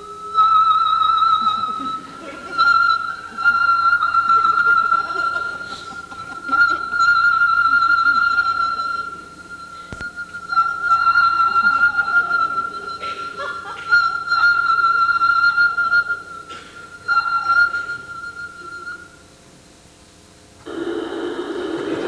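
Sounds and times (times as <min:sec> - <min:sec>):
violin tone shaped by mouth: 0:00.0 - 0:19.2
audience noise: 0:20.6 - 0:22.0.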